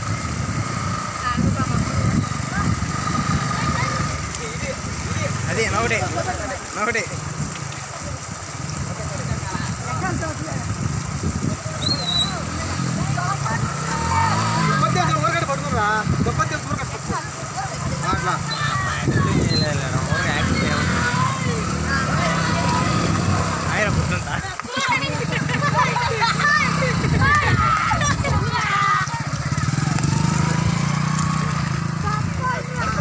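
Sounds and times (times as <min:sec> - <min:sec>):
motorcycle engine revving: 0:00.0 - 0:33.0
people calling out: 0:11.7 - 0:15.3, 0:16.9 - 0:30.8.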